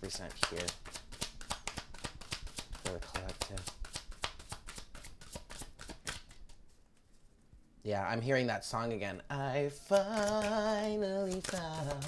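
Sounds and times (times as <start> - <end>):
cards being shuffled: 0.0 - 7.2, 9.8 - 12.0.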